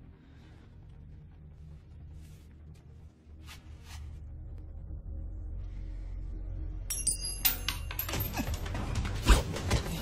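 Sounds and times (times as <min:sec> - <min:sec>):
low film score drone: 0:00.0 - 0:10.0.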